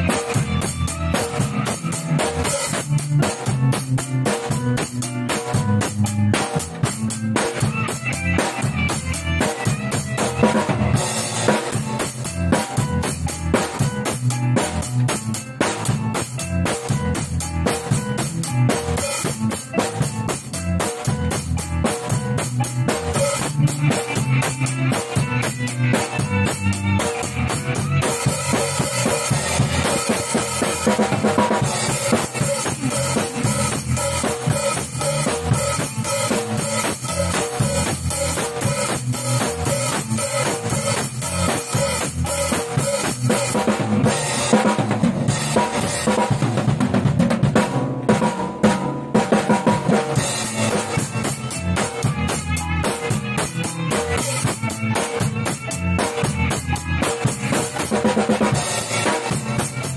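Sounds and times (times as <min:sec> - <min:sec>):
acoustic drum kit groove: 0:00.0 - 0:59.9
backing music recording: 0:00.0 - 0:59.9.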